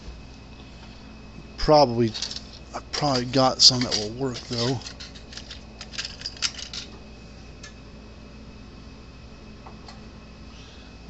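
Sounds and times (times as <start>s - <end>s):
faint steady hum: 0.0s - 11.0s
electronic parts clicking and rattling: 2.0s - 7.0s.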